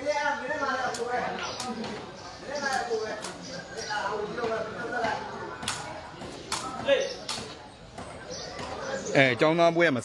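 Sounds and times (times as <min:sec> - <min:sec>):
spectator chatter: 0:00.0 - 0:10.0.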